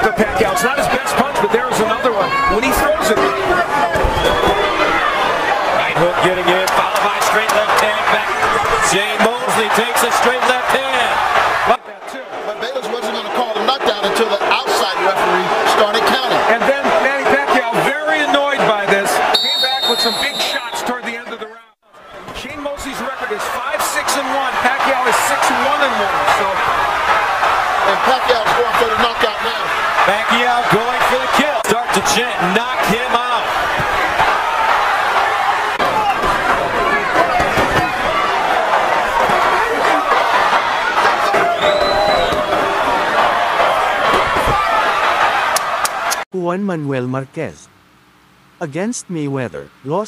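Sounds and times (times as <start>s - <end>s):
crowd noise and voices: 0.0s - 46.2s
short high whistle-like tone: 19.4s - 20.8s.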